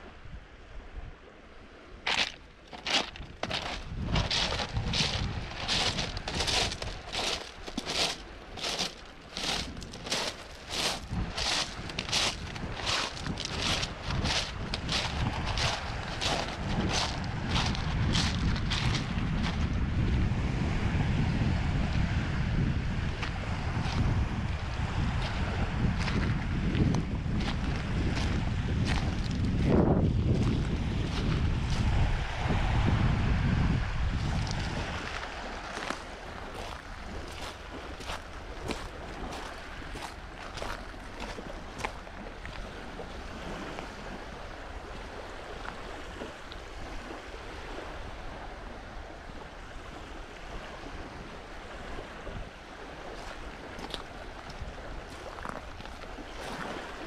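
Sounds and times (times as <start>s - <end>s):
waves lapping on pebbles: 1.6s - 57.0s
wind buffeting microphone: 2.0s - 57.0s
footsteps on shingle: 2.1s - 19.8s, 23.2s - 32.0s, 34.2s - 42.7s, 53.2s - 57.0s.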